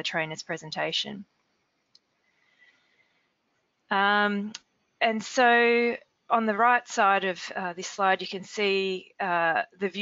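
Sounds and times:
woman saying um: 0.0 - 1.2, 3.9 - 10.0.

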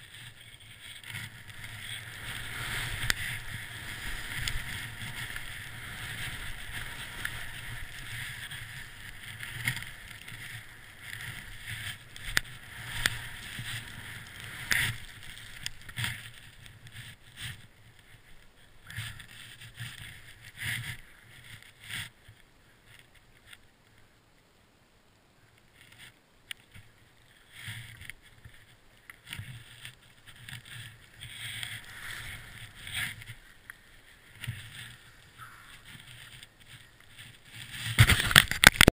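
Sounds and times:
skis swishing through powder snow: 0.0 - 17.7, 29.4 - 38.3.

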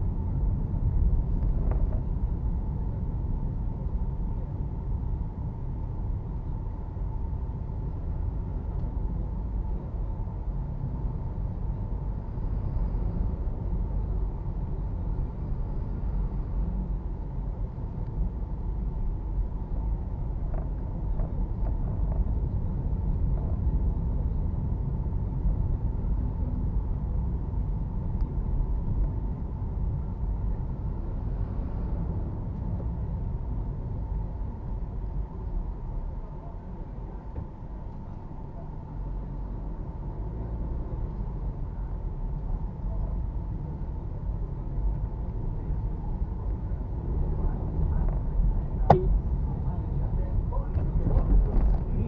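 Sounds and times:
faint steady whine: 0.0 - 51.6
car engine and tyres rumbling: 0.0 - 52.0.

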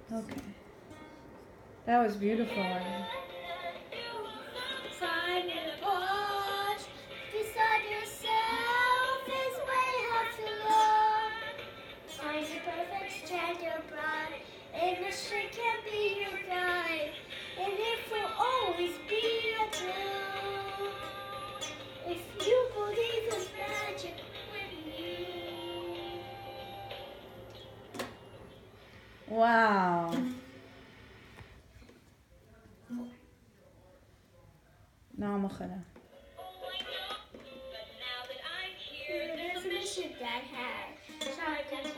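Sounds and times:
faint low hum: 0.0 - 41.9
girl singing: 2.8 - 27.3, 36.6 - 41.9.

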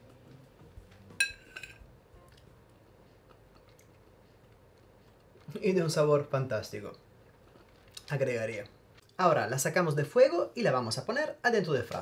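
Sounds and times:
spoon clinking on ceramic plate: 1.2 - 1.8.

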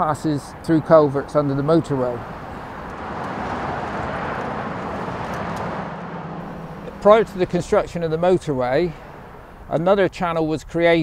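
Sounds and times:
motorway traffic rushing: 0.0 - 11.0.

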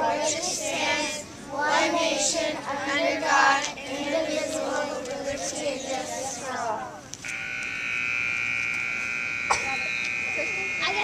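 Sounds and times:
high electronic buzzer tone: 7.2 - 11.0.

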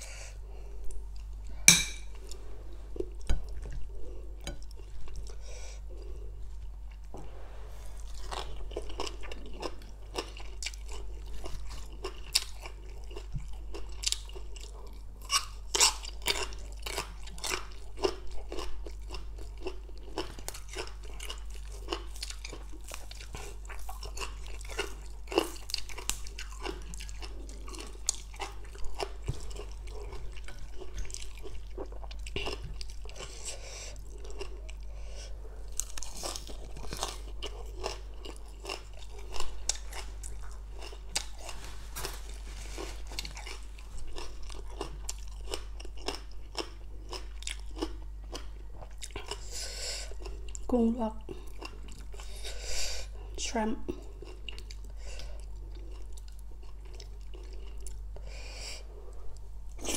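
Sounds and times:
chewing and crunching food: 8.0 - 59.9.

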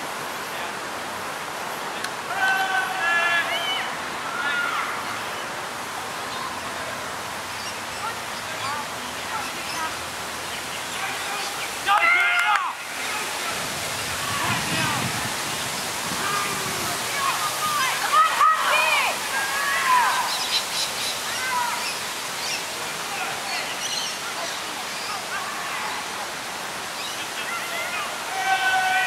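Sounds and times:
outdoor hiss: 0.0 - 29.0
players and spectators shouting: 2.2 - 5.2, 10.9 - 15.3, 16.1 - 20.4, 27.3 - 29.0.

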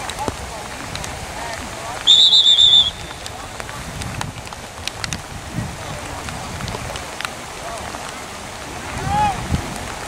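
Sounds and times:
referee whistle blast: 2.1 - 3.3.

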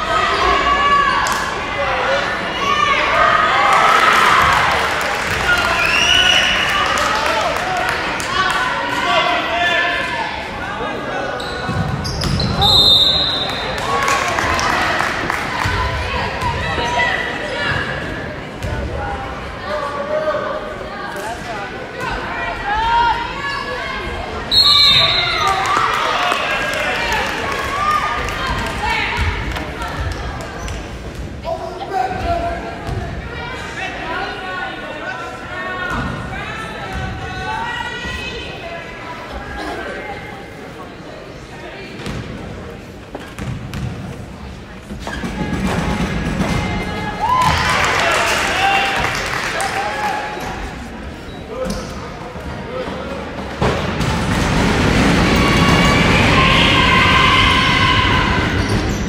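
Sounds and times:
voices in a gym: 0.0 - 59.0.

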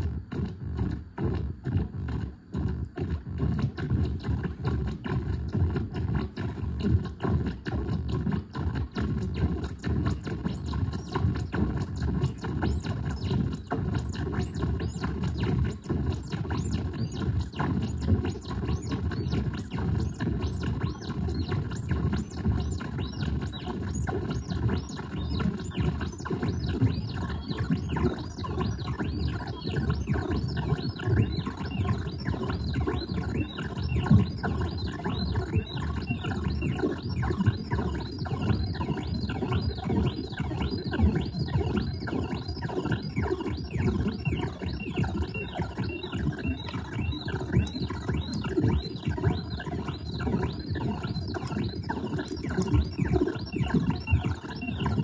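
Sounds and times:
stuttering electronic chirps: 16.4 - 55.0
dense electronic noise texture: 26.5 - 55.0.

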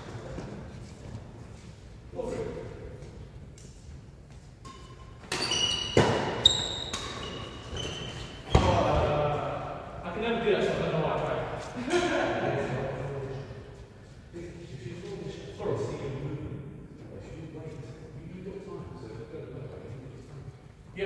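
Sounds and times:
racket striking shuttlecock: 4.6 - 7.3
trainers squeaking on wooden floor: 5.4 - 8.6.

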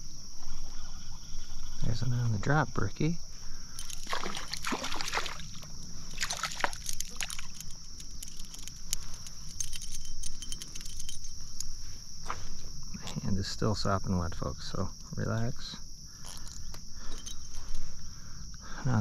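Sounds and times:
crickets buzzing: 0.0 - 19.0
water splashing from a fish: 4.0 - 5.6, 6.2 - 7.4.

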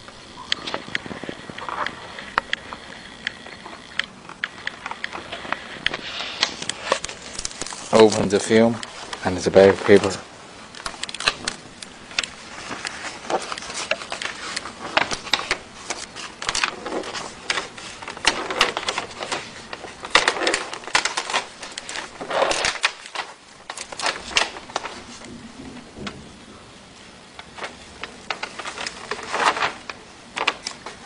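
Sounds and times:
plastic film crinkling: 0.0 - 26.4, 27.0 - 31.0.

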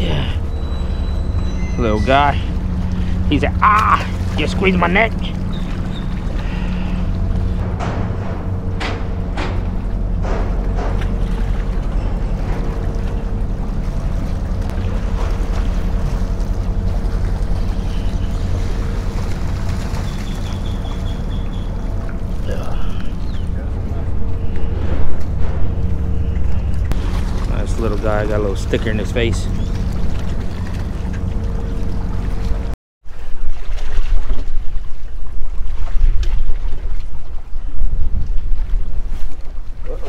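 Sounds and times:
machinery engine droning: 0.0 - 32.8.

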